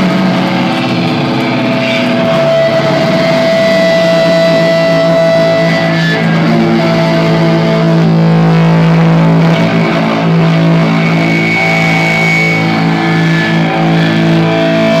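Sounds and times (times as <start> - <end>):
distorted guitar and bass drone: 0.0 - 15.0
high ringing amp feedback: 0.0 - 15.0.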